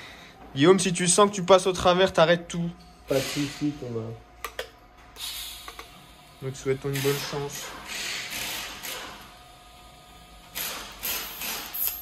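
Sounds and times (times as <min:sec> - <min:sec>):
welding torch gas hiss: 0:05.2 - 0:06.7.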